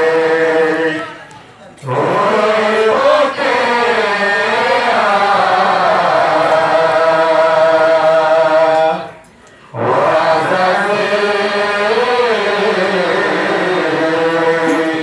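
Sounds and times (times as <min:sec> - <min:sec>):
solo voice chanting: 0:09.7 - 0:15.0.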